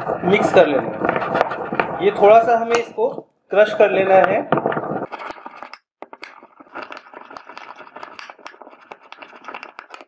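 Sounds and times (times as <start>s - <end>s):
pestle grinding seeds in mortar: 0.0s - 10.0s.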